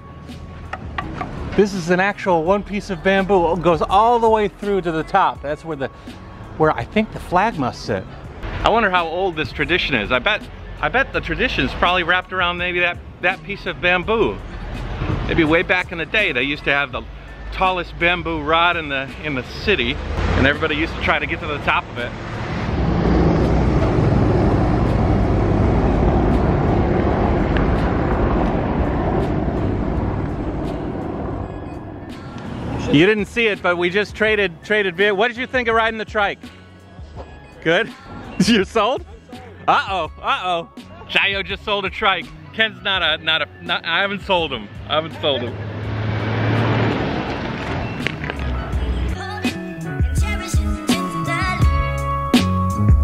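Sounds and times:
motor vehicle passing: 0:00.4 - 0:01.9, 0:19.3 - 0:33.4, 0:44.7 - 0:49.2
helicopter rotor drone: 0:24.3 - 0:32.0.

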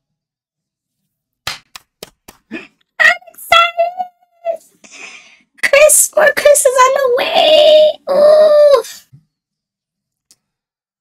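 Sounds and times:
hand claps: 0:01.4 - 0:02.6.

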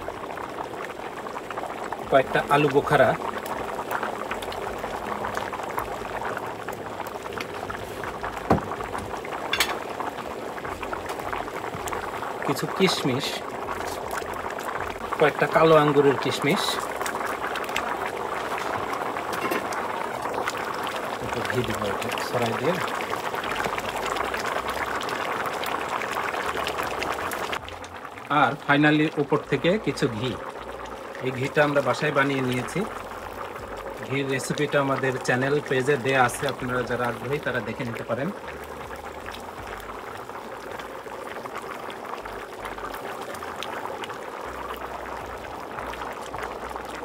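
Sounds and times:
rice boiling in a pot: 0:00.0 - 0:47.0.

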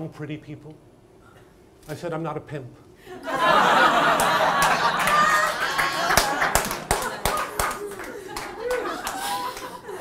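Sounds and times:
audience laughing: 0:03.2 - 0:10.0
audience clapping: 0:04.0 - 0:10.0.

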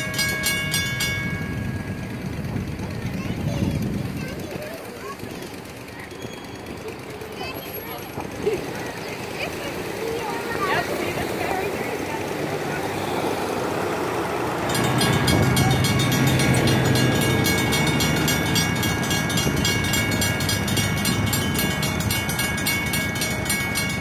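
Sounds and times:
passing road traffic: 0:00.0 - 0:24.0
railroad crossing bells ringing: 0:00.0 - 0:24.0.

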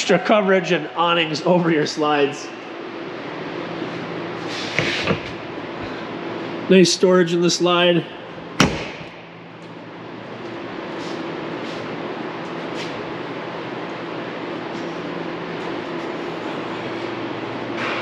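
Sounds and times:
low machinery hum: 0:00.0 - 0:18.0.

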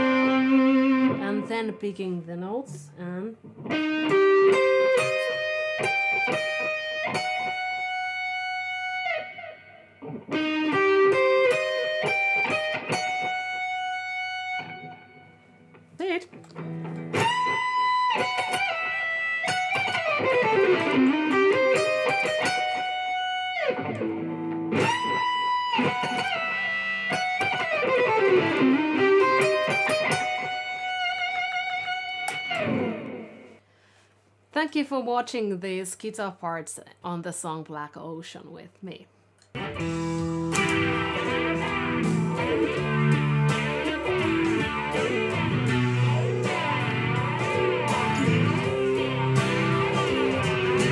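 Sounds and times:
electric guitar solo: 0:00.0 - 0:01.8, 0:03.4 - 0:33.6, 0:39.5 - 0:50.9.

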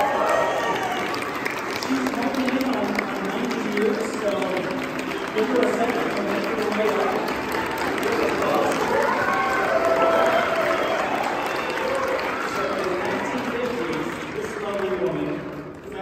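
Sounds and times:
audience applauding: 0:00.0 - 0:16.0
crowd voices: 0:00.0 - 0:16.0.

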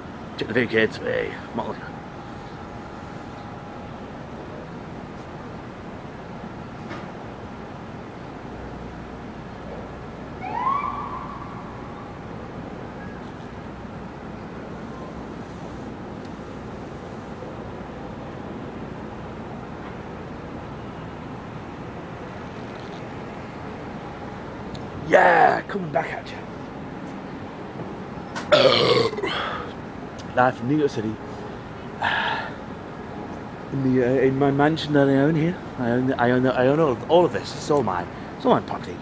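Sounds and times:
city traffic noise: 0:00.0 - 0:39.0
emergency vehicle siren whoop: 0:10.4 - 0:12.3.

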